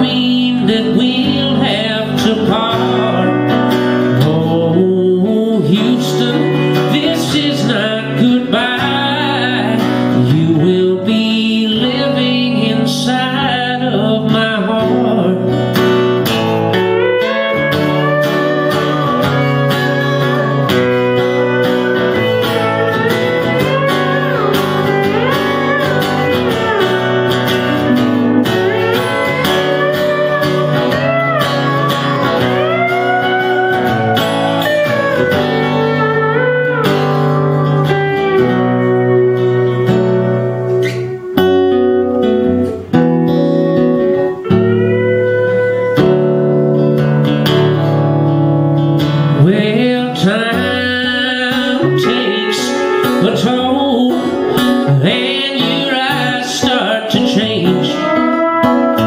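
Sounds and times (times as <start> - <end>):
pedal steel guitar melody: 0.0 - 59.0
strummed acoustic guitar: 0.0 - 59.0.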